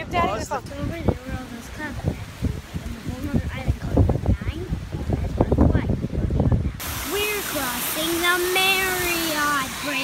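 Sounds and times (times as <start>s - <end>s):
small waterfall rushing: 0.0s - 10.0s
wind rumbling on microphone: 0.0s - 10.0s.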